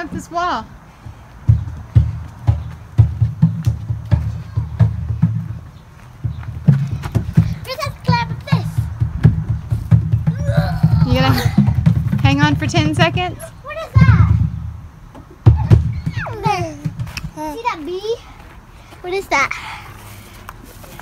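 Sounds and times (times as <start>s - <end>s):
knocks on plastic playground equipment: 1.4s - 17.5s.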